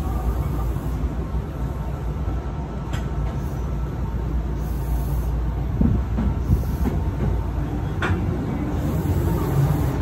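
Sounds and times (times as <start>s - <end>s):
train wheels rumbling on rail: 0.0s - 10.0s
heavy knocks from track: 5.8s - 7.4s.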